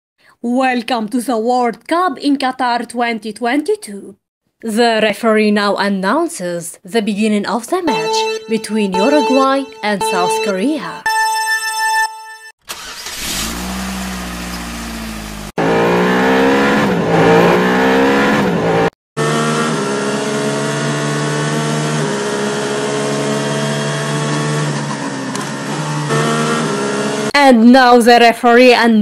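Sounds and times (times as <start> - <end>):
racing car engine revving: 12.8 - 27.3.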